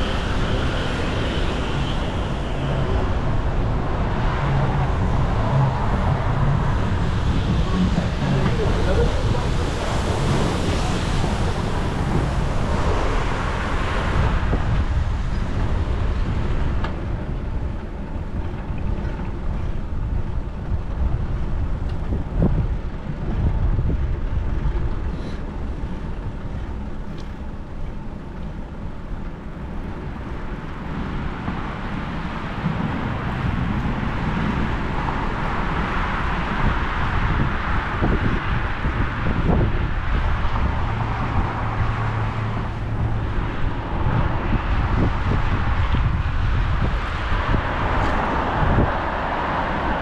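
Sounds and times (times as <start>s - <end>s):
road traffic passing: 0.0s - 50.0s
wind rumbling on microphone: 0.0s - 50.0s.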